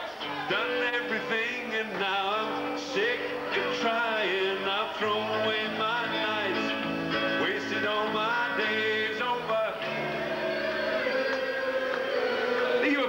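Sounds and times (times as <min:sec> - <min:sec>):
electric guitar bending notes: 0:00.0 - 0:13.0.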